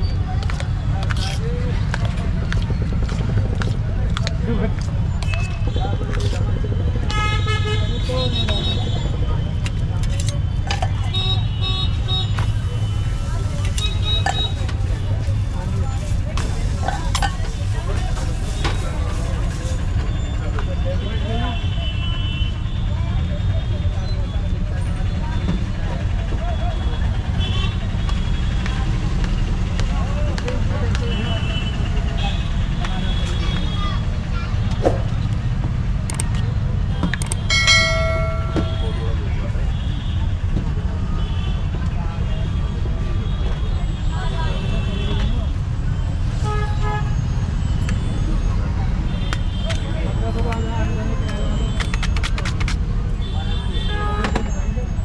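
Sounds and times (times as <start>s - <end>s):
faint voices: 0.0s - 55.0s
low traffic rumble: 0.0s - 55.0s.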